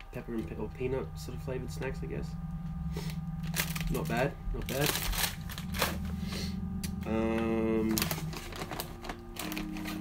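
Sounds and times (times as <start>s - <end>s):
plastic snack bag crackling: 3.4s - 6.1s, 7.8s - 10.0s.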